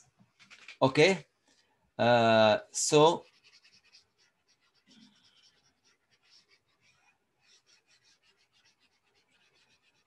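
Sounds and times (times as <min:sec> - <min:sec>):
stylus scratching on tablet: 0:00.3 - 0:01.2, 0:02.5 - 0:10.0.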